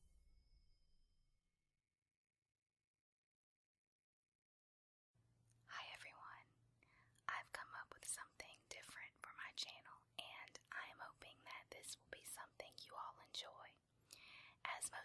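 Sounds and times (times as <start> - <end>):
whispered speech: 7.3 - 13.8, 14.7 - 15.0.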